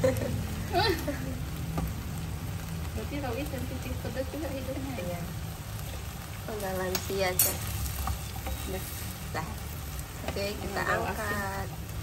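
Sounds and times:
flowers sizzling in a pan: 0.0s - 12.0s.

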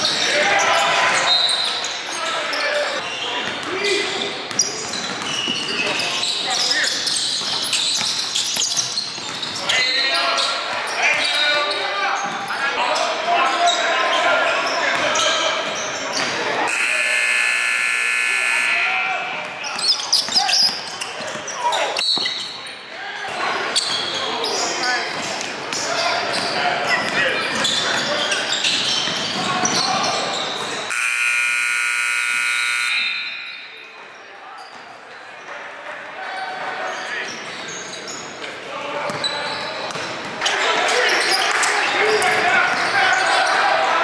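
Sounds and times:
voices around the court: 0.0s - 44.0s
scoreboard horn: 16.7s - 18.9s, 30.9s - 33.3s.

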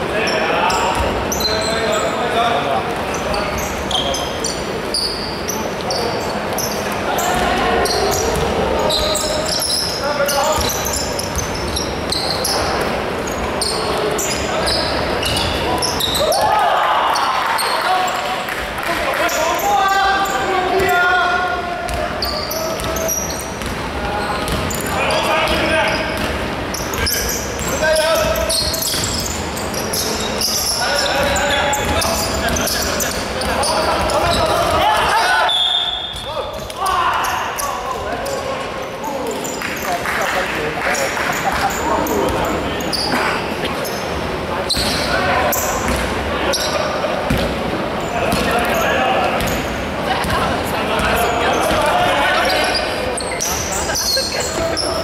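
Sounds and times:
players calling out: 0.0s - 55.0s
shoes squeaking: 0.2s - 18.4s, 21.9s - 40.0s, 40.9s - 55.0s
basketball bouncing: 21.9s - 22.1s, 23.6s - 23.8s, 24.4s - 24.9s, 25.5s - 29.3s, 45.8s - 46.2s, 47.3s - 47.6s.

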